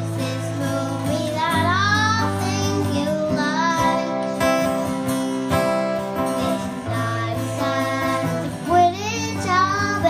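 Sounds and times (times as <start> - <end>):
child singing: 0.0 - 5.1, 6.2 - 10.0
acoustic guitars playing: 0.0 - 10.0.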